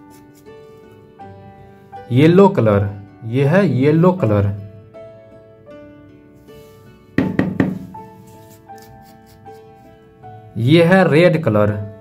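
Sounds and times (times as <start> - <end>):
background music with sustained notes: 0.0 - 12.0
plastic bottle knocking on table: 7.2 - 8.0.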